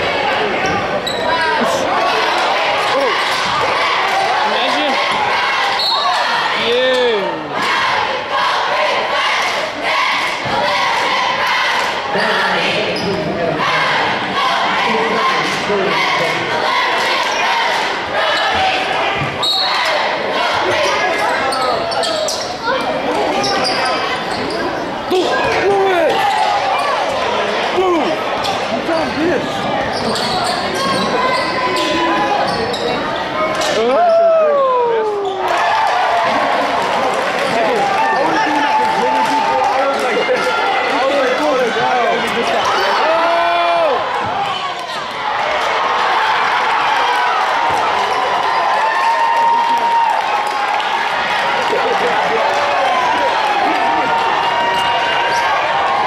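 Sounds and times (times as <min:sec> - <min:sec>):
people calling out: 0:00.4 - 0:35.7
sneakers squeaking: 0:00.6 - 0:01.8, 0:05.7 - 0:06.3, 0:12.9 - 0:13.3, 0:20.6 - 0:25.7, 0:28.4 - 0:33.8.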